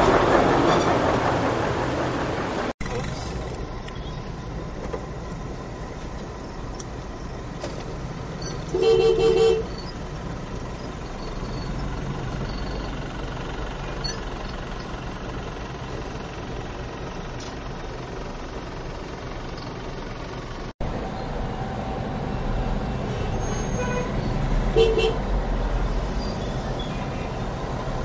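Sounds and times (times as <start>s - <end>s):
traffic jam rumble: 0.0s - 28.0s.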